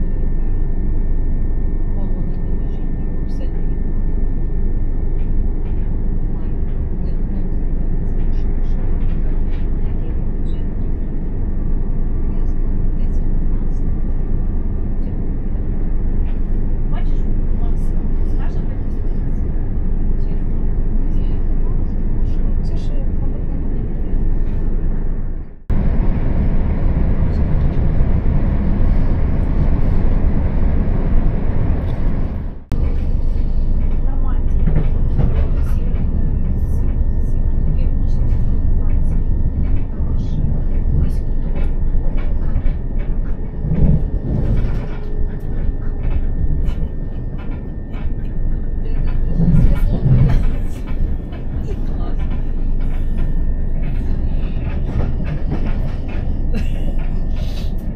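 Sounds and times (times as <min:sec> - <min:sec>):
train wheels rumbling on rail: 0:01.9 - 0:57.9.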